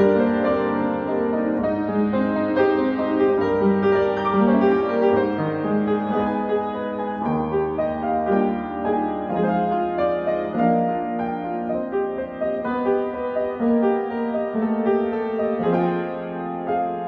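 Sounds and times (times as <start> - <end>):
upright piano playing: 0.0 - 17.0.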